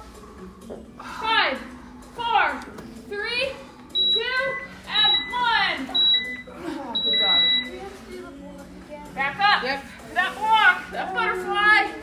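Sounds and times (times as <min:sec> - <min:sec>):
interval timer beeps: 0:03.9 - 0:07.8.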